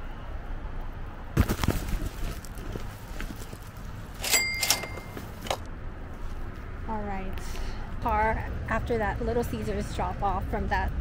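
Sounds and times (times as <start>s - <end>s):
low outdoor rumble: 0.0s - 11.0s
woman speaking: 6.9s - 11.0s.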